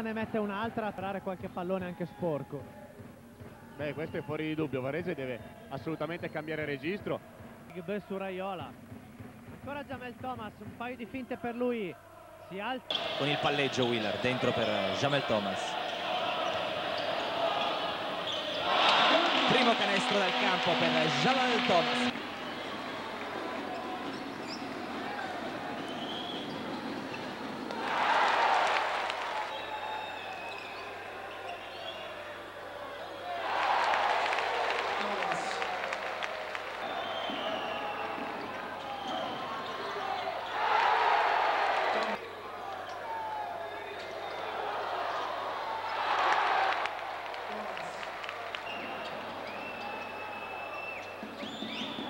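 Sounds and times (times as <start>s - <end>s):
crowd murmuring: 12.9s - 27.8s
crowd cheering: 12.9s - 52.0s.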